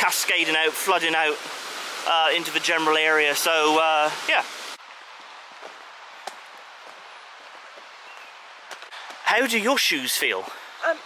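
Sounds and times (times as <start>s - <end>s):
outdoor hiss: 0.0s - 11.0s
footsteps on tarmac: 5.5s - 9.3s.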